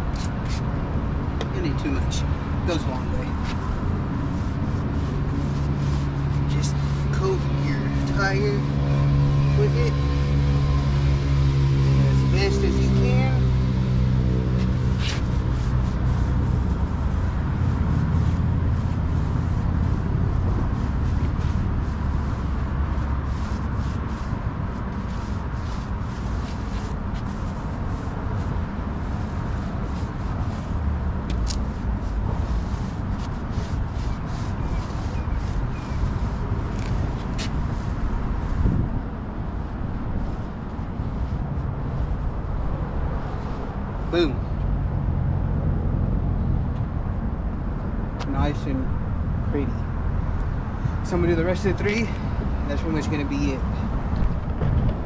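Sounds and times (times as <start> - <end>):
applicator brushing on tire: 0.0 - 44.4
steady low rumble: 0.0 - 55.0.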